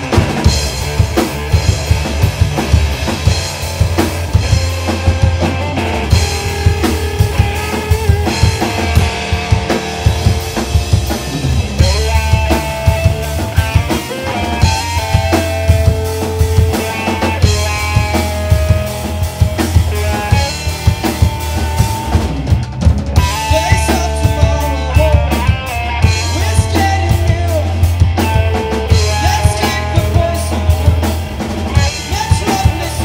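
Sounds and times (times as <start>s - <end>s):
bass guitar: 0.0s - 33.0s
drum kit beating: 0.0s - 33.0s
electric guitar: 0.0s - 33.0s.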